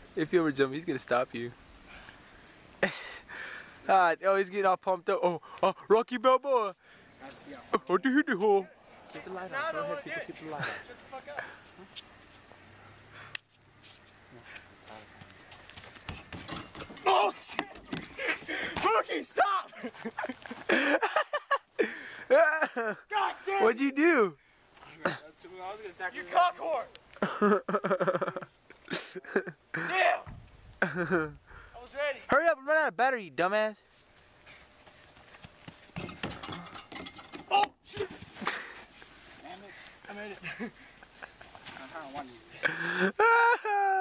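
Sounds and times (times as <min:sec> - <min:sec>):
running footsteps on dirt and grass: 0:15.0 - 0:19.0, 0:33.9 - 0:36.0, 0:37.8 - 0:42.6.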